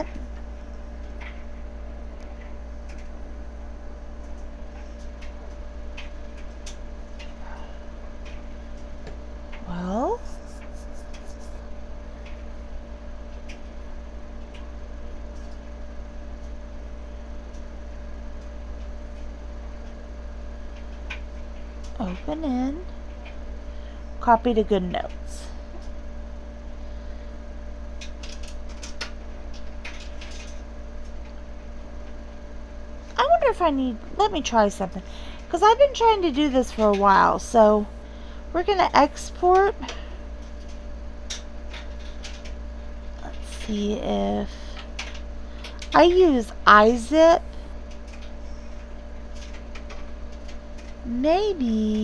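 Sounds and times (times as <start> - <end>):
low electrical hum: 0.0 - 52.0.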